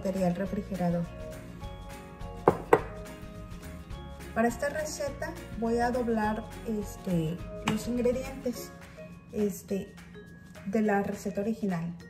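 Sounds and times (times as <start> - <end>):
soft background music: 0.0 - 12.0
glass jar knocking on stone: 2.4 - 3.0.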